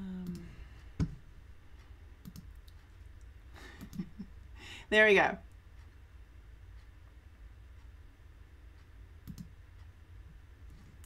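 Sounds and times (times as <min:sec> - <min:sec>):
low steady hum: 0:00.0 - 0:11.0
computer mouse clicks: 0:02.2 - 0:04.1, 0:09.2 - 0:09.9.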